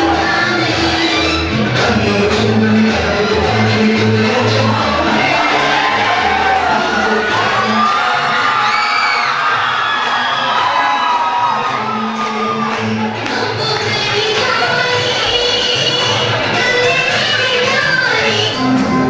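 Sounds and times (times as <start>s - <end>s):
loud dance music with bass beat: 0.0s - 19.0s
audience cheering and shouting: 4.5s - 16.7s.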